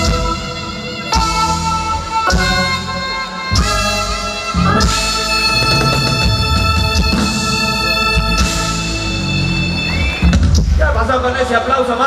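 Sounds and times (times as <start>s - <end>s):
live band music through speakers: 0.0s - 12.0s.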